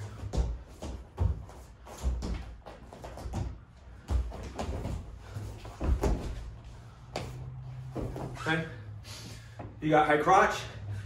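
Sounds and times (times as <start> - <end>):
bodies thudding on foam mats: 0.0 - 8.5.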